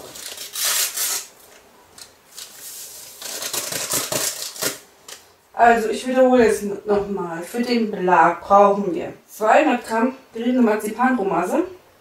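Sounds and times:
rustling and scraping of ingredients: 0.0 - 5.4.

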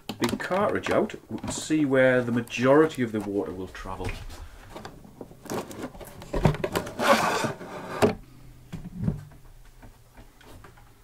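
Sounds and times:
plastic clicks and knocks: 0.0 - 1.7
plastic scraping against plastic: 0.0 - 8.2.

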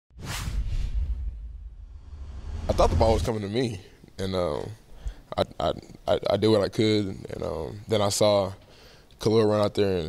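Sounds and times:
rushing whoosh: 0.2 - 3.3
deep low rumble: 0.5 - 3.3.

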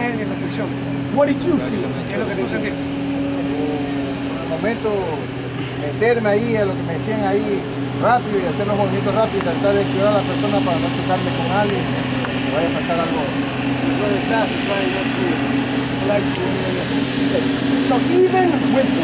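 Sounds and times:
low mechanical hum: 0.0 - 19.0
men talking: 0.0 - 19.0.

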